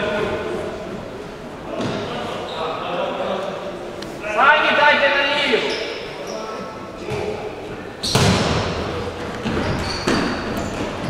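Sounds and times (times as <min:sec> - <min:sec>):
ball bouncing and kicked: 0:08.0 - 0:08.6.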